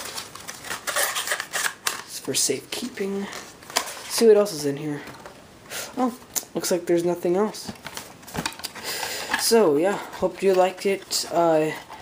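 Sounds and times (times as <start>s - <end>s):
paper sleeve rustling and scraping: 0.0s - 2.1s.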